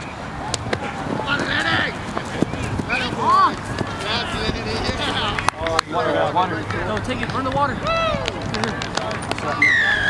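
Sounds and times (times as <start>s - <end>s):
players running on grass: 0.4s - 10.0s
crowd shouting: 2.9s - 6.4s, 9.5s - 10.0s.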